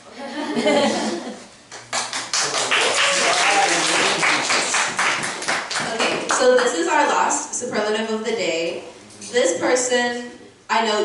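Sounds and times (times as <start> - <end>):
laughter: 0.1 - 1.5
group applauding: 1.7 - 6.7
voices: 5.8 - 11.0.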